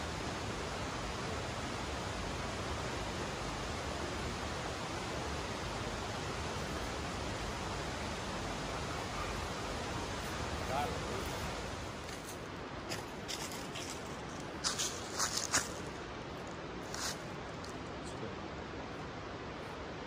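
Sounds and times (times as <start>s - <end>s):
outdoor noise haze: 0.0s - 20.0s.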